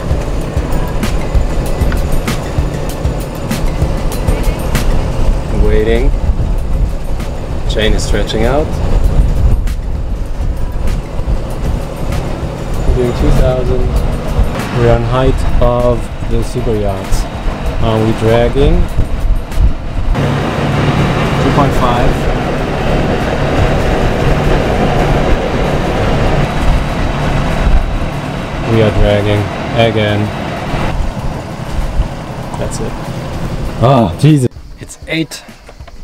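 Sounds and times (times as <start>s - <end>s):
diesel engine droning: 0.0s - 36.0s
wind buffeting microphone: 0.0s - 36.0s.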